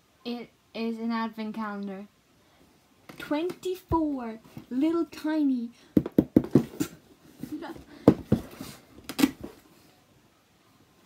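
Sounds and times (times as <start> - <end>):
woman laughing in quick bursts: 7.4 - 8.0.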